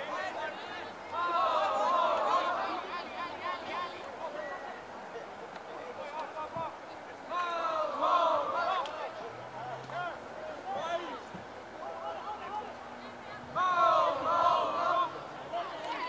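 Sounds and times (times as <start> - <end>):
people shouting: 0.0 - 4.0, 7.3 - 9.2, 13.3 - 16.0.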